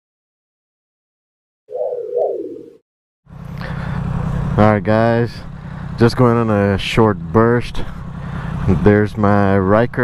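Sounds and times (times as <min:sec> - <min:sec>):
rising-and-falling logo tones: 0:01.7 - 0:02.8.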